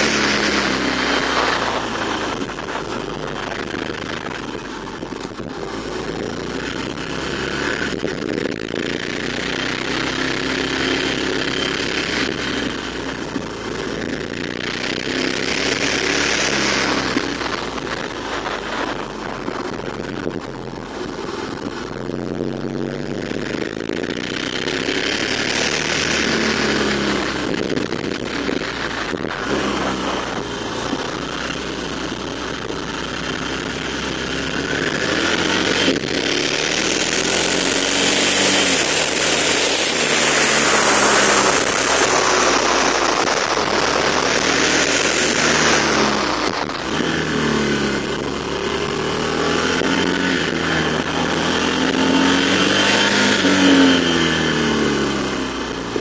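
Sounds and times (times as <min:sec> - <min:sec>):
motorcycle engine running: 0:00.0 - 0:56.0
wind rush on microphone: 0:00.0 - 0:56.0.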